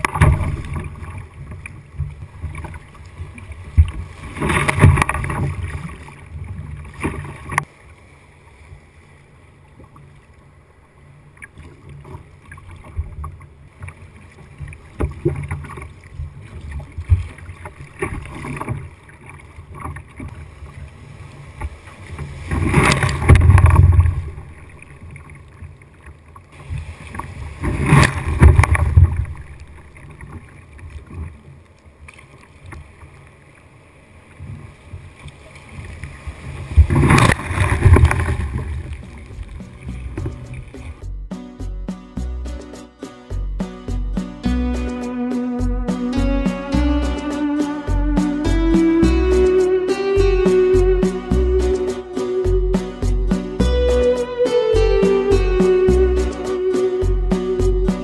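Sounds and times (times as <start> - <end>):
water splashing against kayak: 0.0 - 41.0
low rush of water: 0.0 - 41.1, 42.7 - 58.0
waves breaking: 0.0 - 58.0.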